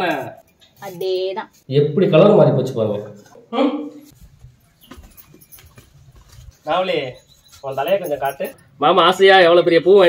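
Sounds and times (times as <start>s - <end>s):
footsteps on hard floor: 4.1s - 6.7s.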